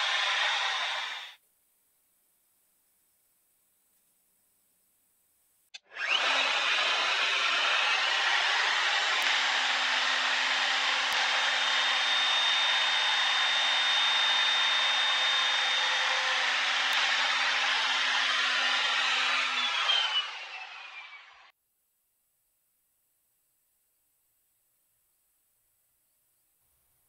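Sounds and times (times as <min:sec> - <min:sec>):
router whining while cutting wood: 0:00.0 - 0:01.4, 0:05.8 - 0:21.5.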